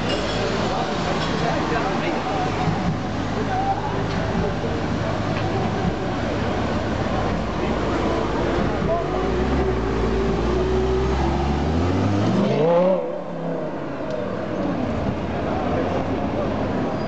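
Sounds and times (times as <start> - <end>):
sports car engine revving: 5.8 - 15.2.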